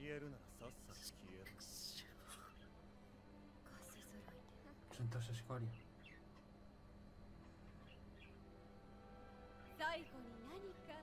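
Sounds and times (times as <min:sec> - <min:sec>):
faint hushed voices: 0:00.8 - 0:02.8.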